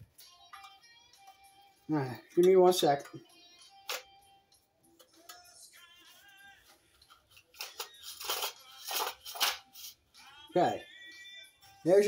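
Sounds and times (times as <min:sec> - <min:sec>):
quiet background music: 0:00.0 - 0:12.0
rustling and scraping handling: 0:06.0 - 0:10.0.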